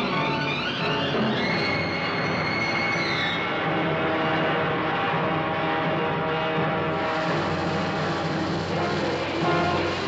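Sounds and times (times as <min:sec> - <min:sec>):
orchestral trailer music: 0:03.1 - 0:10.0.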